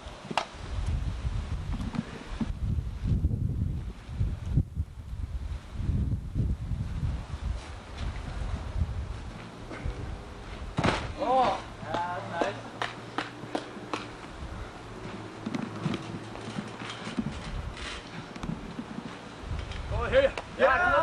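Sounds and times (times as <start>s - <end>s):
knocks and footfalls: 10.7s - 14.3s
body slam thud on mat: 10.8s - 11.2s.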